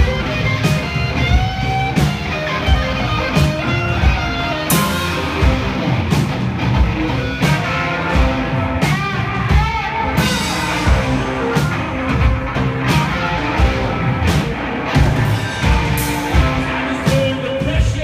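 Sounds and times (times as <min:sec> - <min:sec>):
drum kit: 0:00.0 - 0:18.0
electric guitar: 0:00.0 - 0:18.0.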